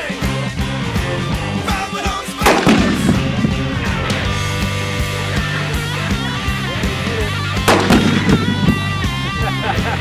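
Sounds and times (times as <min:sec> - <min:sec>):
rock music with steady beat: 0:00.0 - 0:10.0.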